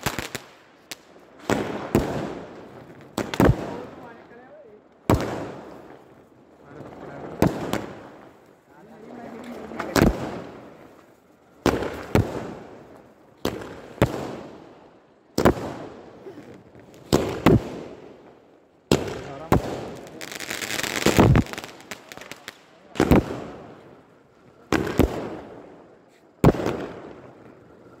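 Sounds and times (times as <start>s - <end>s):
fireworks bangs with echo: 0.0s - 4.4s, 5.0s - 11.0s, 11.6s - 28.0s
fireworks hissing: 19.1s - 28.0s.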